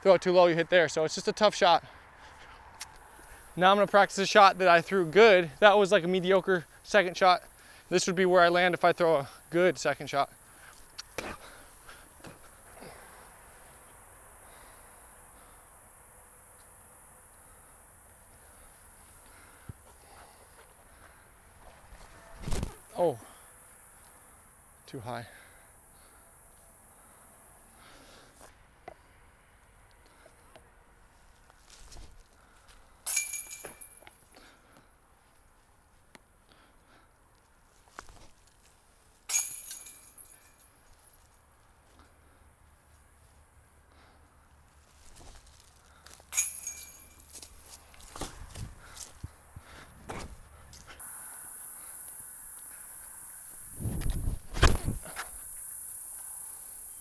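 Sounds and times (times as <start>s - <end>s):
discs clanking on chain basket: 33.1s - 34.1s, 39.3s - 40.6s, 46.3s - 47.4s
high insect buzz: 51.0s - 57.0s.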